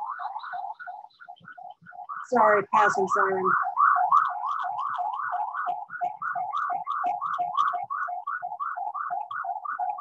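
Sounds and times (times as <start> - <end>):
emergency siren yelping: 0.0 - 10.0.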